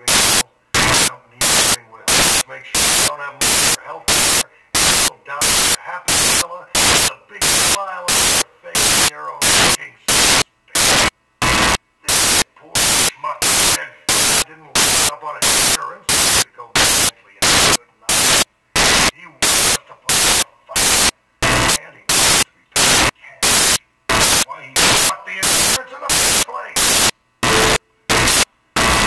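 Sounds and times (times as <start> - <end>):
man speaking: 0.0 - 11.0, 12.0 - 18.4, 19.1 - 27.0
bursts of static hiss: 0.0 - 29.0.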